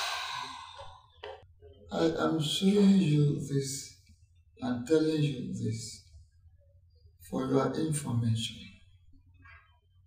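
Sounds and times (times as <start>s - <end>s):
breathy sigh: 0.0s - 1.0s
short breath: 0.0s - 1.0s.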